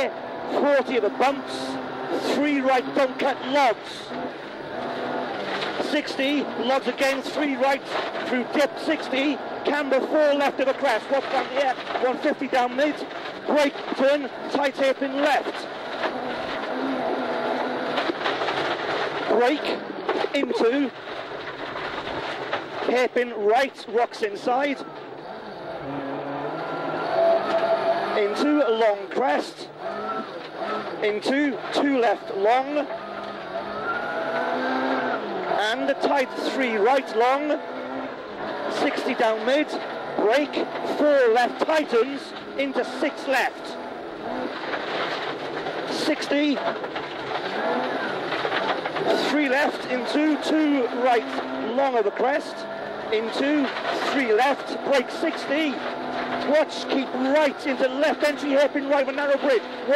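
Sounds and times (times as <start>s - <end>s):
car engine running: 0.0s - 59.9s
gravel rumbling under tyres: 0.0s - 59.9s.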